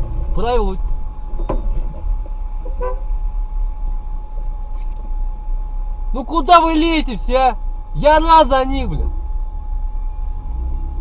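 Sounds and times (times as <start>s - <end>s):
car engine and road rumble: 0.0s - 11.0s
steady thin whine: 0.0s - 11.0s.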